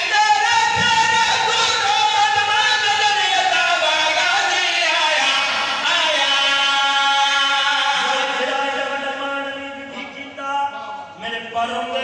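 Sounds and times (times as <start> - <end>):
men chanting over loudspeaker: 0.0 - 12.0.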